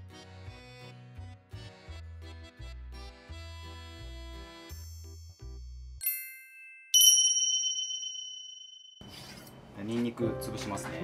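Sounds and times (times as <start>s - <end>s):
bell dings: 6.0s - 9.0s
background music: 10.1s - 11.0s.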